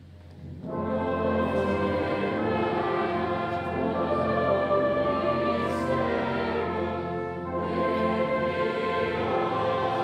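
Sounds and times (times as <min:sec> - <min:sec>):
congregation singing a carol: 0:00.4 - 0:10.0
brass band playing: 0:00.6 - 0:10.0.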